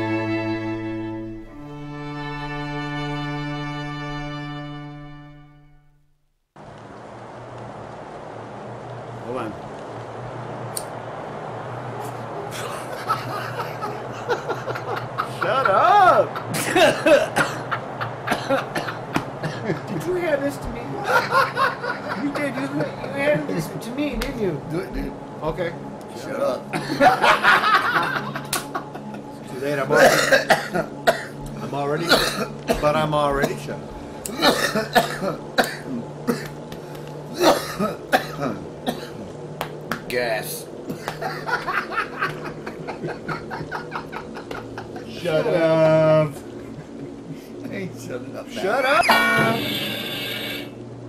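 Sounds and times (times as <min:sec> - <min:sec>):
low hum: 0:00.0 - 0:51.0
cough-like bursts: 0:16.6 - 0:17.7, 0:29.9 - 0:31.4, 0:32.0 - 0:32.9, 0:34.3 - 0:36.5, 0:37.3 - 0:39.3.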